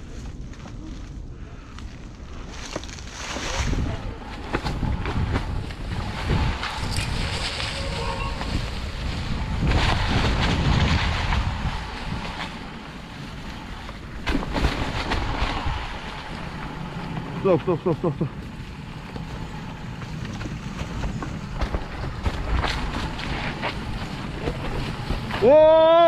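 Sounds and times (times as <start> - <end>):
bike tyres rolling on dirt trail: 0.0 - 26.0
wind buffeting microphone: 1.1 - 26.0
bike rattling clicks and knocks: 18.4 - 25.6.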